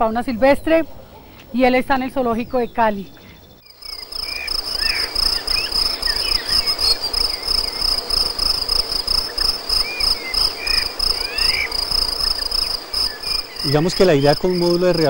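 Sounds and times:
crickets trilling: 0:00.0 - 0:15.0.

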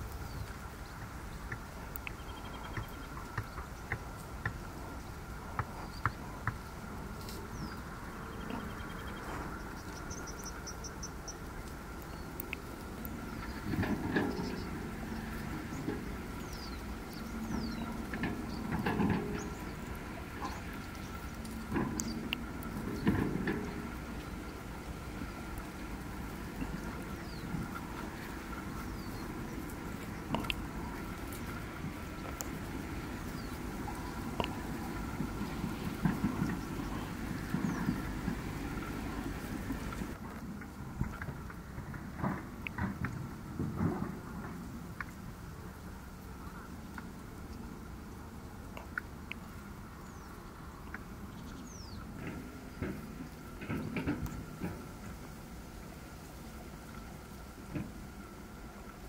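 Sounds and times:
birds chirping: 0:00.0 - 0:40.2, 0:46.2 - 0:55.4
low steady rumble: 0:00.0 - 0:59.0
wind buffeting microphone: 0:00.0 - 0:59.0
birds whistling: 0:07.4 - 0:12.7.

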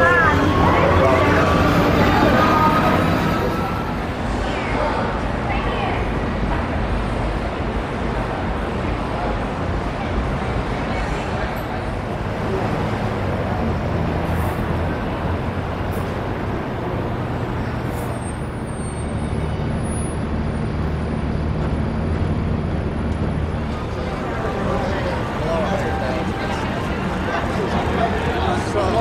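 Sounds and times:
street traffic noise: 0:00.0 - 0:29.0.

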